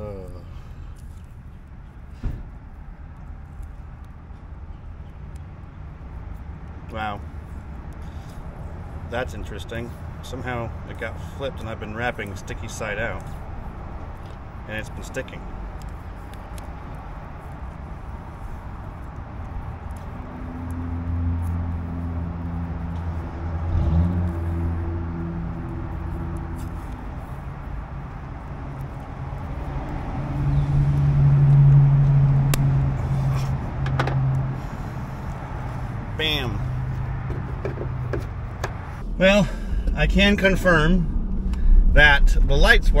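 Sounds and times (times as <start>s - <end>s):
vehicle engine running: 6.3s - 43.0s.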